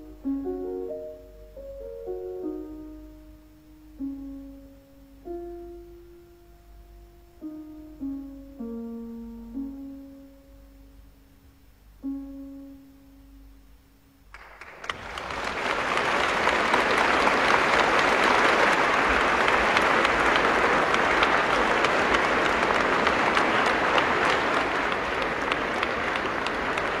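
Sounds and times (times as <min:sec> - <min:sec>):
piano note: 0:00.0 - 0:14.6
audience applause: 0:14.3 - 0:27.0.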